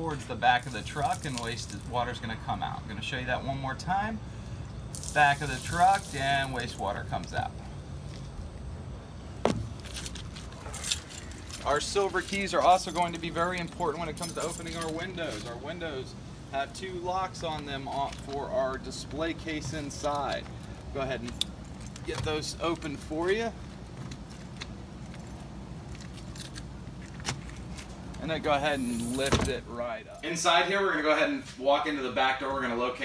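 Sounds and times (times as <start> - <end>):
keys jingling: 10.0 - 15.5, 20.4 - 22.9, 23.6 - 27.9
key ring jingling: 10.6 - 15.4.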